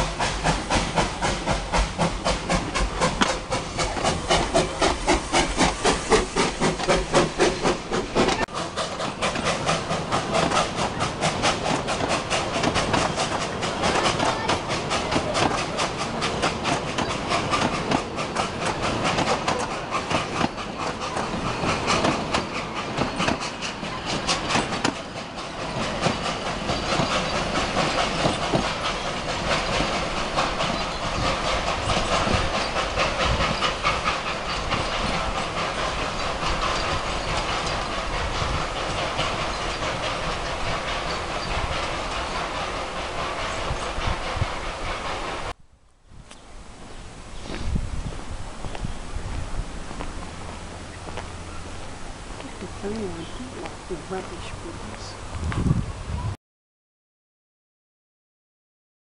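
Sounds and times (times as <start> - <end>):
carriage wheels clattering over rail joints: 0.0 - 45.4
steam locomotive chuffing: 0.0 - 45.6, 46.5 - 55.9.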